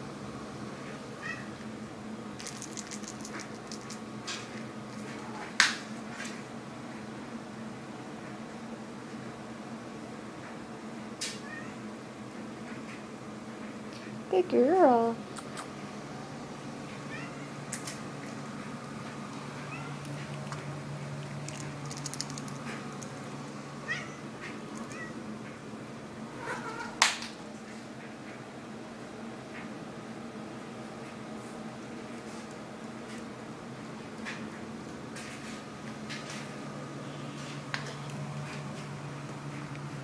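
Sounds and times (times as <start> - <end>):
cat meowing: 1.2 - 1.5, 23.8 - 24.2, 24.8 - 25.2, 26.4 - 27.0.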